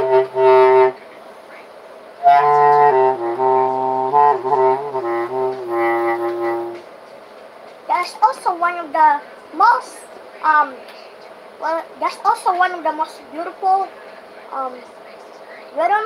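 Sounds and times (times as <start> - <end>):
bass clarinet low notes: 0.0 - 1.0, 2.2 - 6.9.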